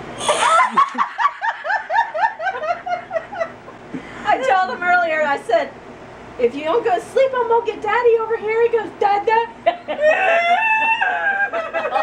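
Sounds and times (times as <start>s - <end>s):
woman laughing: 0.2s - 4.9s, 9.6s - 12.0s.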